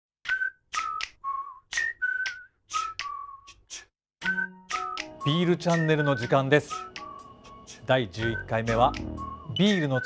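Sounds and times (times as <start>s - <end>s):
sharp clicks or claps: 0.2s - 3.9s
whistled notes: 0.2s - 10.0s.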